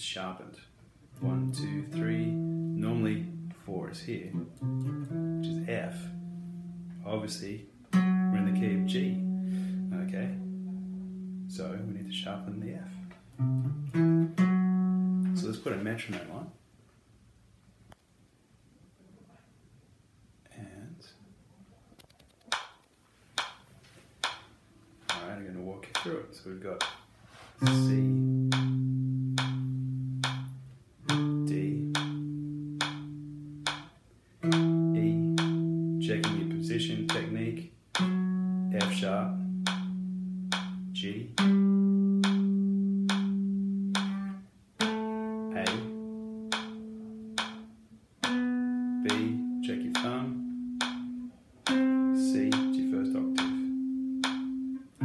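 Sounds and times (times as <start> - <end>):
metronome clicking: 1.2 - 7.1, 7.9 - 15.6, 22.0 - 23.6, 24.2 - 55.0
clean electric guitar notes: 1.2 - 15.5, 27.6 - 37.4, 38.0 - 55.0.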